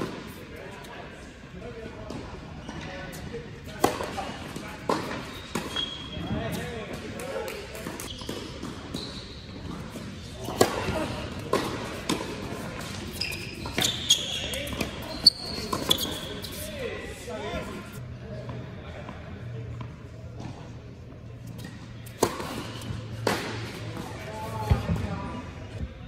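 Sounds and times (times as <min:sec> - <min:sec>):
shoes squeaking on court: 0:02.5 - 0:06.9, 0:07.8 - 0:16.9
racket striking tennis ball: 0:10.4 - 0:13.1, 0:22.1 - 0:23.8.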